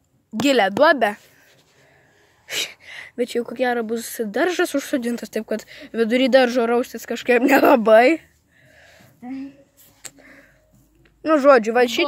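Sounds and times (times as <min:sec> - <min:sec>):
person talking: 0:03.2 - 0:08.2.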